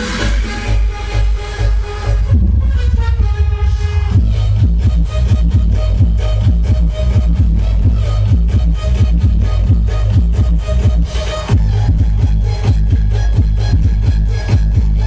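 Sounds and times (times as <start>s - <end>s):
dance music with heavy bass: 0.0s - 15.0s.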